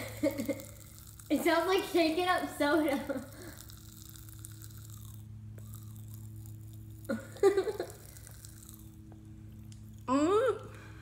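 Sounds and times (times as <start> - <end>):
candy crackling and fizzing: 0.0 - 10.3.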